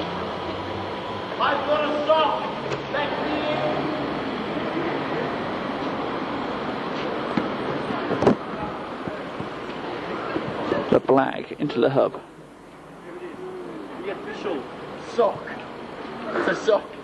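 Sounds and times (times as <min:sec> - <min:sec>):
many voices chattering: 0:00.0 - 0:17.0.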